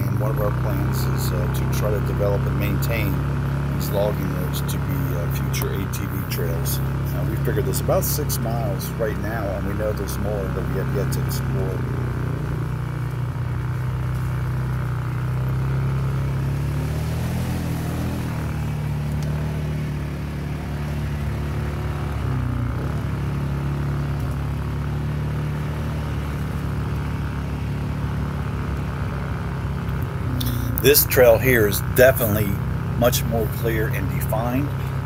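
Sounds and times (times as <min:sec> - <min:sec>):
atv engine running: 0:00.0 - 0:35.0.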